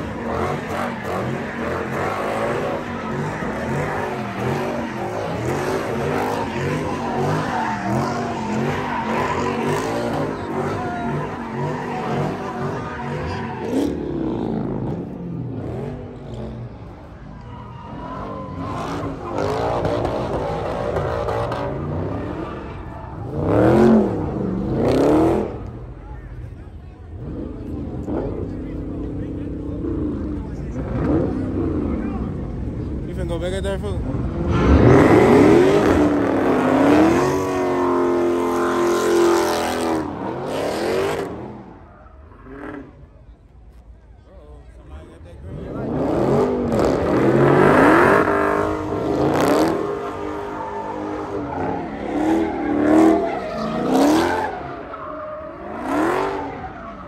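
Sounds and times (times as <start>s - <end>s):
tyre screech: 0.0s - 14.5s, 48.1s - 57.0s
car engine revving: 0.0s - 17.1s, 18.4s - 26.4s, 27.1s - 43.4s, 45.0s - 57.0s
crowd voices: 0.0s - 57.0s.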